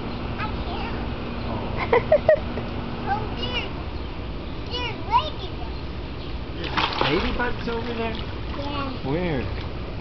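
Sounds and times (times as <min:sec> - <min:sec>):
pool water splash: 0:06.6 - 0:09.8.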